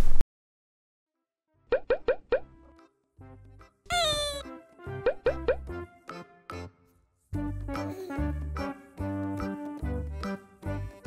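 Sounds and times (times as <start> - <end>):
playful music with bouncy bass: 1.7 - 6.8, 7.4 - 11.0
rising bloop cartoon effects: 3.9 - 4.5.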